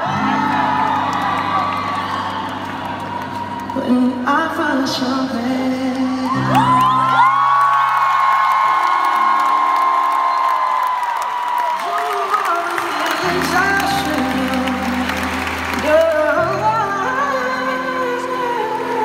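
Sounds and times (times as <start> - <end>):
crowd whooping and cheering: 0.0 - 4.4, 6.2 - 17.7
piano chords: 0.0 - 11.2, 12.5 - 19.0.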